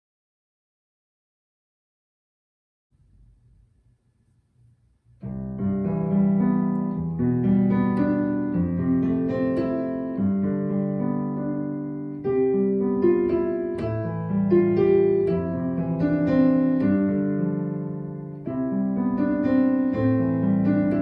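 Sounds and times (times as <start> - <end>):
digital piano playing: 5.2 - 21.0.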